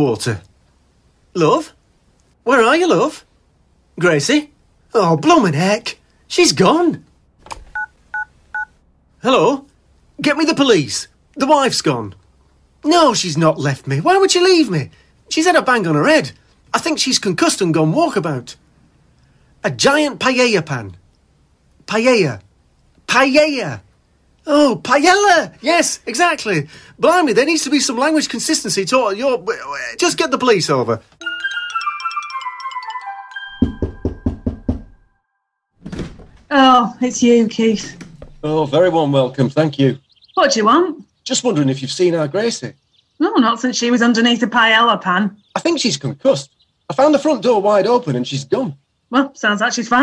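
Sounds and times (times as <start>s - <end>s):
knocking on door: 33.6s - 35.1s.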